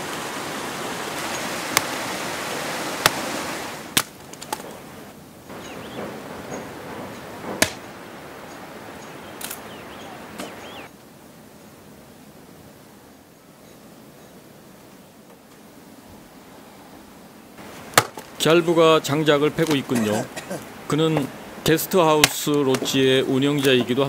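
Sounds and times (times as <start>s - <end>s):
mountain stream rushing: 0.0s - 14.8s, 15.6s - 24.0s
axe splitting firewood: 1.2s - 2.2s, 3.0s - 4.8s, 7.4s - 8.0s, 17.8s - 18.4s.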